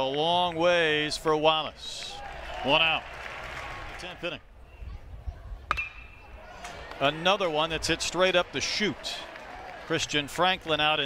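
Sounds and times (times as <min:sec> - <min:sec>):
stadium crowd noise: 0:00.0 - 0:11.0
metal bat hitting ball: 0:05.7 - 0:06.2.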